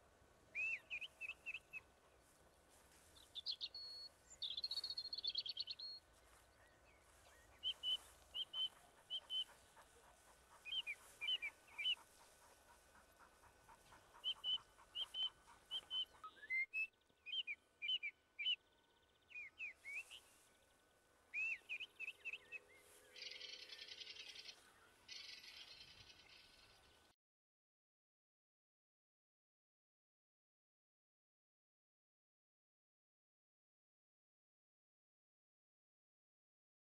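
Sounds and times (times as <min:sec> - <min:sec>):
bird chirping: 0:00.5 - 0:02.4, 0:03.1 - 0:20.7, 0:21.3 - 0:27.1.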